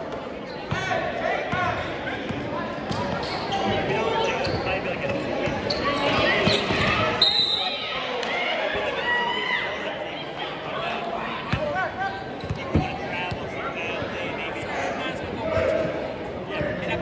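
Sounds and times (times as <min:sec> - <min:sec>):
indistinct crowd voices: 0:00.0 - 0:17.0
sneaker squeaks: 0:00.4 - 0:00.9, 0:02.9 - 0:07.9, 0:12.4 - 0:12.8.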